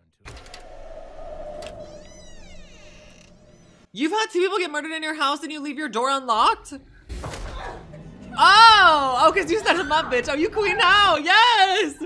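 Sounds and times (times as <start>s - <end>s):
door creaking open: 0.3s - 3.9s.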